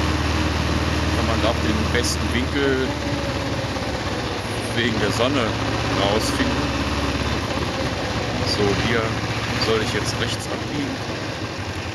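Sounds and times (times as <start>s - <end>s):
motorcycle engine running: 0.0s - 11.9s.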